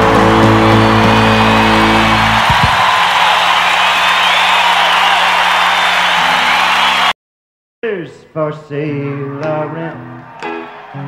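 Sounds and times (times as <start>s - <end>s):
song's final held chord: 0.0s - 2.5s
audience cheering and applauding: 0.0s - 7.2s, 10.2s - 11.0s.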